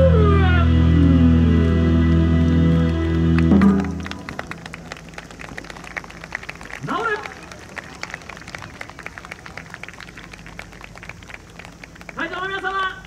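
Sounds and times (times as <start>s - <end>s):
scattered clapping: 2.0s - 13.0s.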